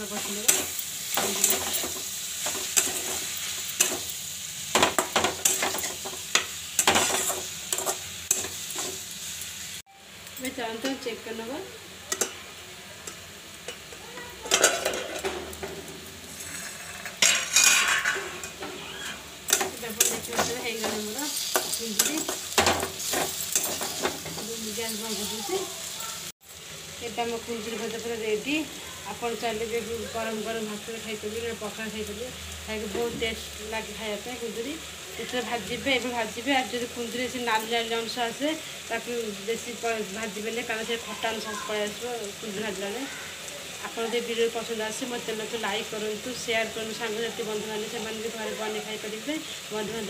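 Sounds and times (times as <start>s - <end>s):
light sizzle: 0.0s - 50.0s
metal spatula scraping a pan: 4.8s - 9.0s, 14.5s - 24.4s
person talking: 24.4s - 26.3s.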